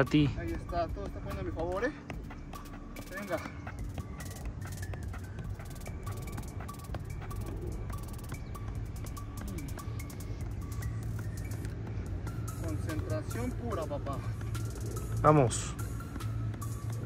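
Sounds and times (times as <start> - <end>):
background music with steady beat: 0.0 - 17.0.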